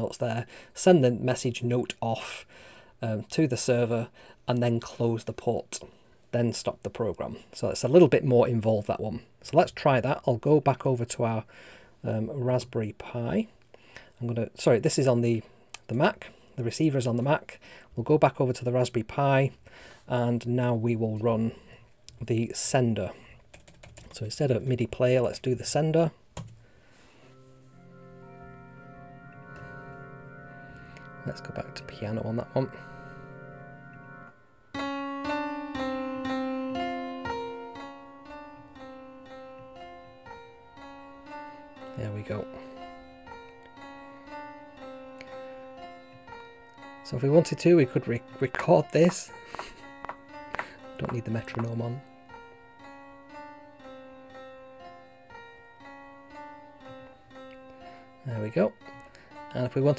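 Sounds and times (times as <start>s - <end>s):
sustained organ chord: 27.1s - 59.9s
piano single notes: 27.2s - 59.9s.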